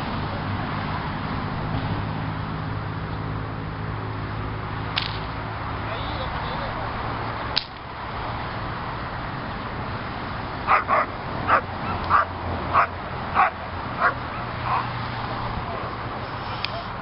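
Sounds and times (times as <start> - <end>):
sharp crack: 4.9 - 5.4, 7.5 - 7.9
dog barking sharply: 10.7 - 14.9.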